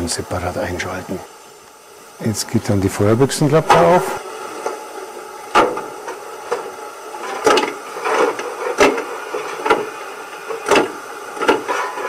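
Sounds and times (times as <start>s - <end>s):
shovel scraping coal from loudspeaker: 11.7s - 12.0s.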